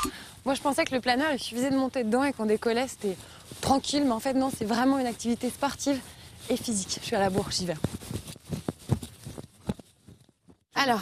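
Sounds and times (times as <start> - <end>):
footsteps running on grass: 0.4 - 10.7.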